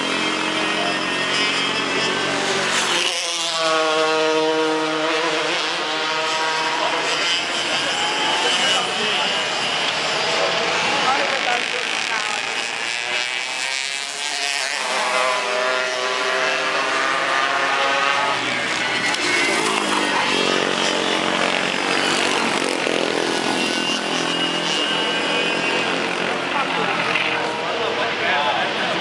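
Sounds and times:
racing kart engines buzzing: 0.0s - 29.0s.

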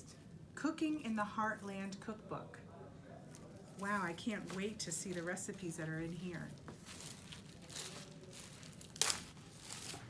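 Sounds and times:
plastic wrapping crinkling: 3.3s - 10.0s
sharp plastic crackle: 6.4s - 10.0s.

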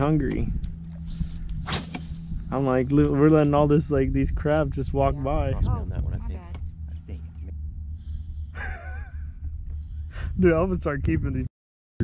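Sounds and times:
steady low rumble: 0.0s - 11.5s.

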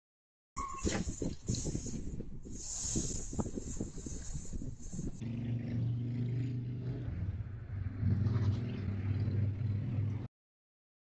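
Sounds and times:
hiss: 1.0s - 5.2s
vehicle engine humming: 3.7s - 10.3s.

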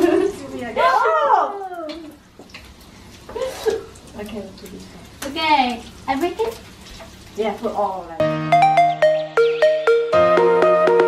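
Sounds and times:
woman exclaiming: 0.8s - 1.9s.

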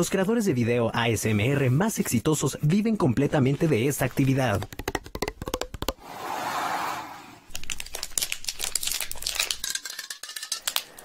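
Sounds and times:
fingernails tapping plastic bottle: 4.5s - 6.0s
plastic crinkling: 7.5s - 11.0s.

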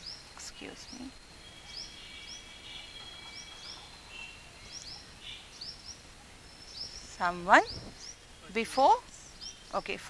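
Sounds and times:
faint high bird chirps: 0.0s - 10.0s
soft outdoor background noise: 0.0s - 10.0s
thin steady high tones: 0.0s - 10.0s.

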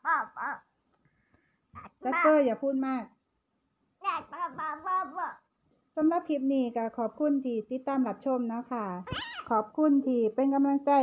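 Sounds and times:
toddler babbling: 4.0s - 5.4s, 9.1s - 9.5s.

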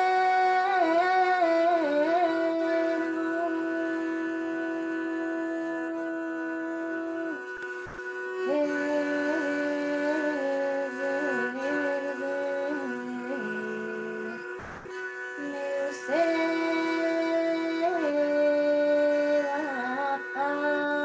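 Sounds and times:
bowed string drone: 0.0s - 21.0s
woman singing a lament: 0.0s - 21.0s.

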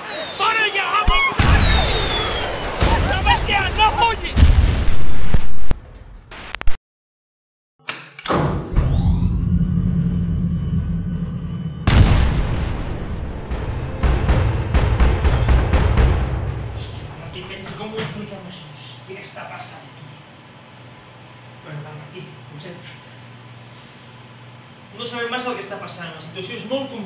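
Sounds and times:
falling bomb whistle: 0.0s - 3.1s, 14.1s - 15.9s
people shouting: 0.0s - 4.3s
loud explosions: 0.0s - 6.4s, 11.8s - 17.5s
heavy hit: 8.7s - 17.6s
sustained tone over deep rumble: 8.8s - 15.5s.

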